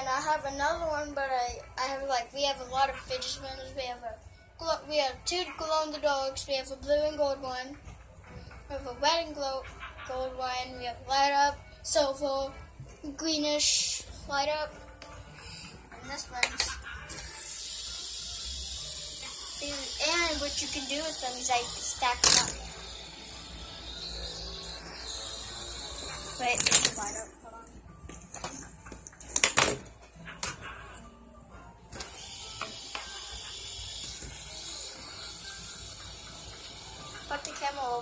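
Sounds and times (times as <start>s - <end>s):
fidget spinner whirring: 5.4s - 31.1s, 31.9s - 38.0s.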